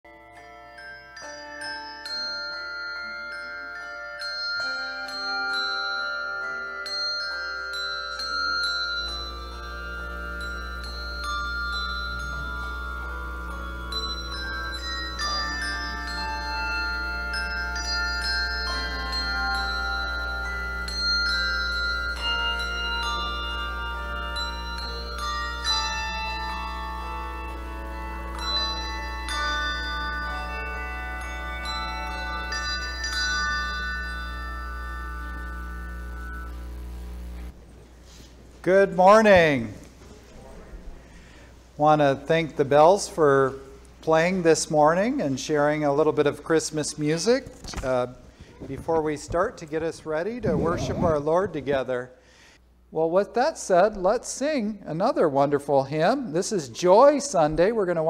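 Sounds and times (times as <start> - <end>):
handbell choir ringing: 0.1 - 37.5.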